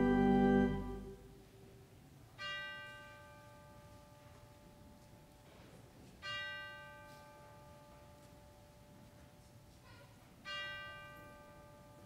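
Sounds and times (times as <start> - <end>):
ringing struck chord: 0.0 - 1.2.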